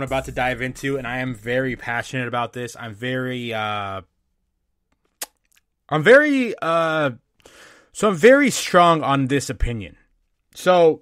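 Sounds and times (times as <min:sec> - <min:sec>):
man speaking: 0:00.0 - 0:04.1.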